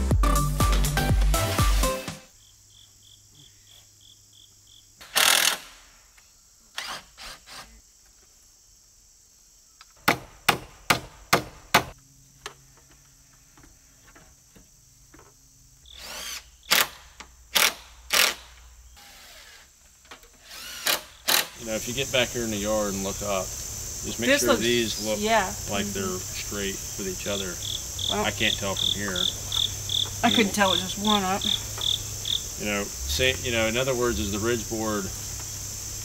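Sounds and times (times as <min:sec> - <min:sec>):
background music: 0:00.0 - 0:02.3
crickets chirping: 0:02.2 - 0:36.0
hammer striking wood: 0:10.0 - 0:12.0.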